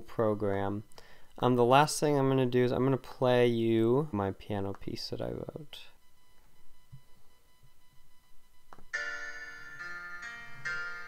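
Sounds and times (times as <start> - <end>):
synthesized piano chords: 8.9 - 11.0.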